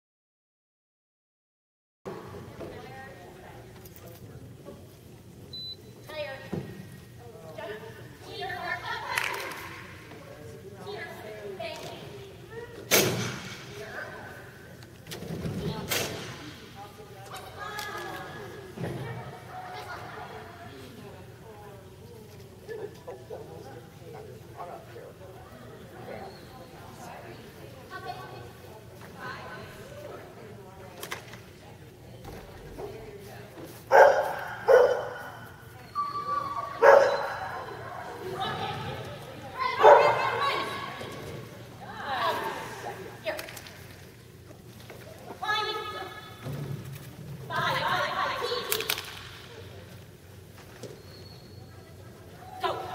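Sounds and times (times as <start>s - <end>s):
dog barking: 33.9s - 35.4s, 36.8s - 37.5s, 39.8s - 40.2s.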